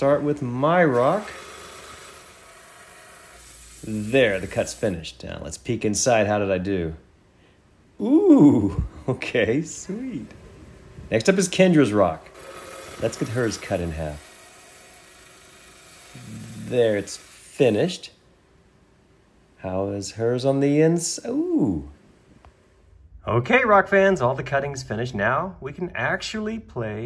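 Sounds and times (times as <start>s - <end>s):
band saw cutting stone with water: 0.0s - 4.8s, 12.4s - 17.6s.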